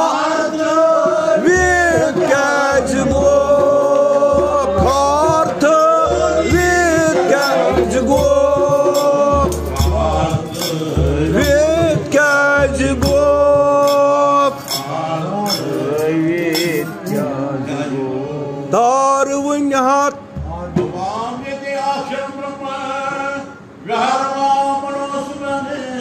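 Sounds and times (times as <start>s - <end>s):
men singing a devotional chant: 0.0s - 26.0s.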